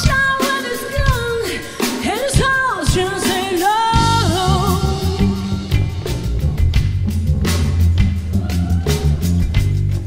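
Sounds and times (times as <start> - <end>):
woman singing with vibrato: 0.0 - 5.8
live band playing: 0.0 - 10.0.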